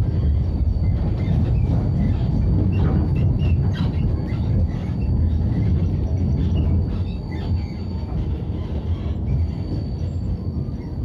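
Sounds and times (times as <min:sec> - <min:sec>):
tram rumble: 0:00.0 - 0:11.0
short high squeaks: 0:06.0 - 0:11.0.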